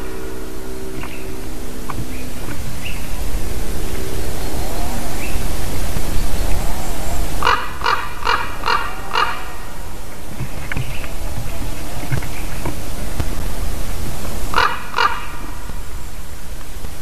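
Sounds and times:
raven calling: 0:00.0 - 0:16.8
steady low rumble: 0:00.0 - 0:17.0.

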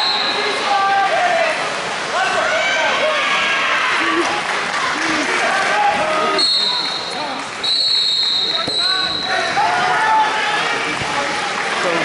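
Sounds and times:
shrill whistle blasts: 0:00.0 - 0:00.4, 0:06.4 - 0:09.5
people shouting in echoing hall: 0:08.8 - 0:11.0.

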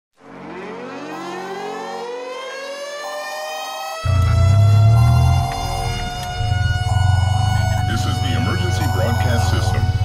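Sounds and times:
rising siren-like tones: 0:00.3 - 0:10.0
low steady drone: 0:04.1 - 0:10.0.

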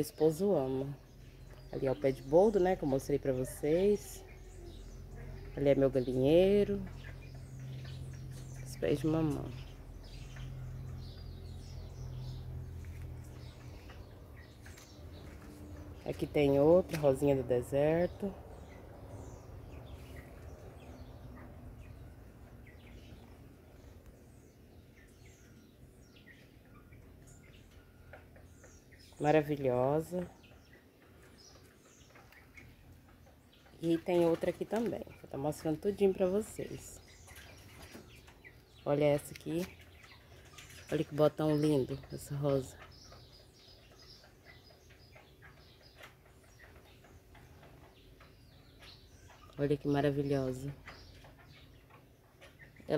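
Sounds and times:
low background rumble: 0:00.0 - 0:52.9
small birds chirping: 0:00.0 - 0:52.9
faint bird chirps: 0:18.5 - 0:29.3.

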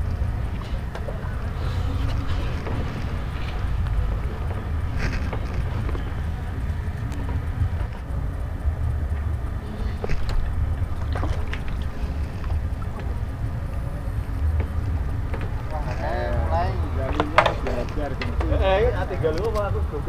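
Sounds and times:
faint clicks: 0:00.0 - 0:20.0
steady low rumble: 0:00.0 - 0:20.0.

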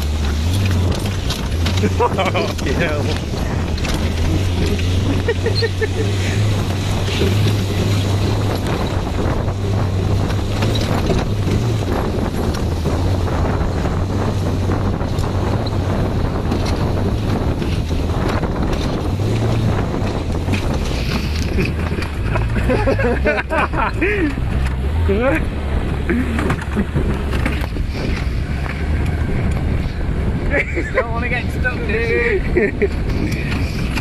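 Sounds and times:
vehicle knocks and rattles: 0:00.0 - 0:31.8, 0:32.4 - 0:34.0
buggy engine running under load: 0:00.0 - 0:34.0
wind on microphone: 0:00.0 - 0:34.0.

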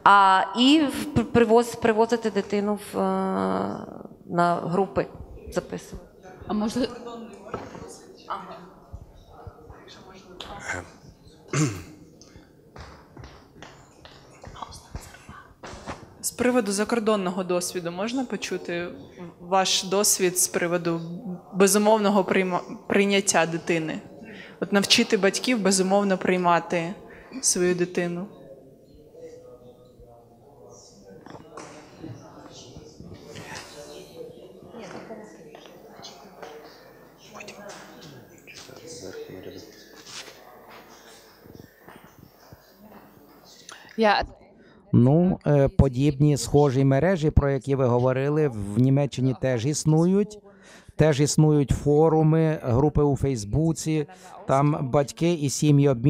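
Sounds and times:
faint voices murmuring: 0:02.3 - 0:52.0
person whispering: 0:09.3 - 0:11.0, 0:14.3 - 0:15.7, 0:37.2 - 0:40.3.

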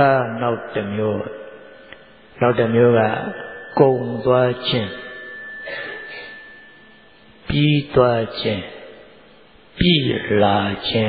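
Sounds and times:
person giving a sermon into microphone: 0:00.0 - 0:01.4, 0:02.4 - 0:05.0, 0:07.5 - 0:08.7, 0:09.8 - 0:11.0
faint room hiss: 0:00.0 - 0:11.0
steady high-pitched tone: 0:00.0 - 0:11.0.

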